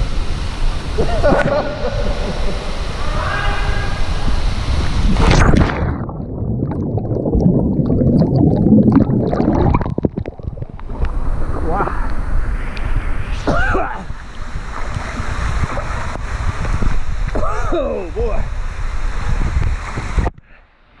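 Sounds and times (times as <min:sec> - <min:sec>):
water rushing down a slide tube: 0:00.0 - 0:20.3
muffled underwater bubbling: 0:04.3 - 0:17.8.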